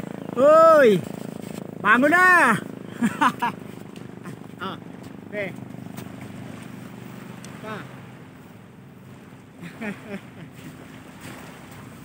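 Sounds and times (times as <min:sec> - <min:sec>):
gentle sea surf: 0:00.0 - 0:12.0.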